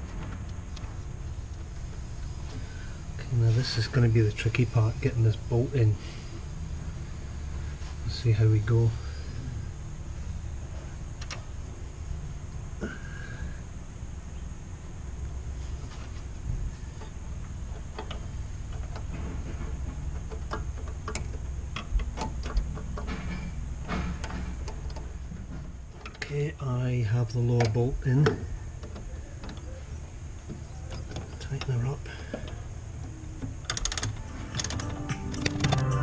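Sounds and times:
low background hum: 0:00.0 - 0:36.0.

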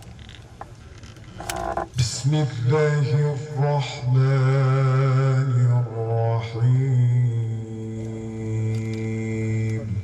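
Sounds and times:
low hum through sound system: 0:00.0 - 0:10.0
microphone handling click: 0:00.6 - 0:02.0.

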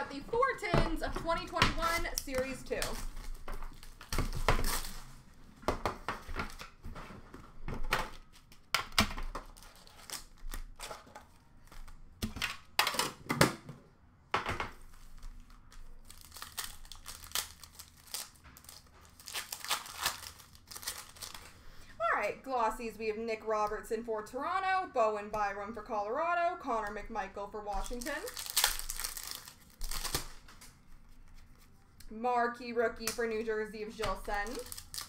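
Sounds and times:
wrappers crinkling and tearing: 0:01.8 - 0:05.3, 0:09.4 - 0:12.0, 0:14.9 - 0:21.8, 0:27.8 - 0:31.7, 0:34.1 - 0:35.0.

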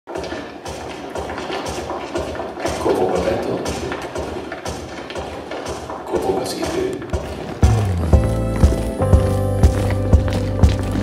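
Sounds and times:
music with sharp knocking beat: 0:00.1 - 0:11.0.

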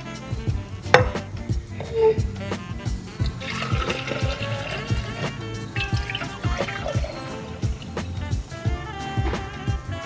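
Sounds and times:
background music with steady beat: 0:00.0 - 0:10.0
coffee pouring into glass jar: 0:03.2 - 0:07.8.

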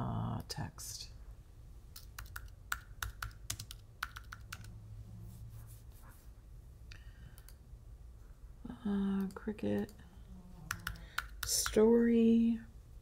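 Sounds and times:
computer keyboard typing: 0:02.0 - 0:04.8, 0:10.7 - 0:11.9.

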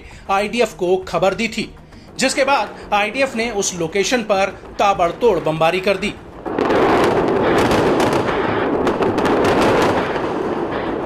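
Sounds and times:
continuous heavy roar: 0:06.2 - 0:11.0
rapid crackle of gunfire: 0:06.5 - 0:11.0.

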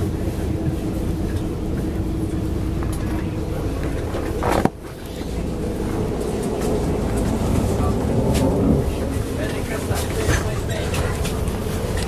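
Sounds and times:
bus engine and road rumble: 0:00.0 - 0:12.0
constant hum: 0:00.0 - 0:12.0.

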